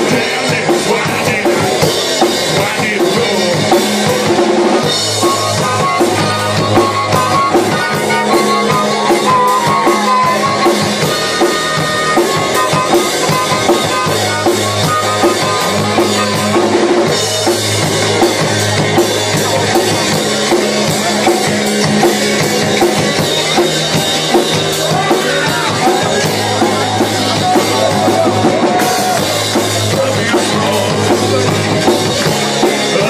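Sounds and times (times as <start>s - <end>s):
drum kit beat: 0.0s - 33.0s
harmonica through microphone: 0.0s - 33.0s
rock band playing: 0.0s - 33.0s.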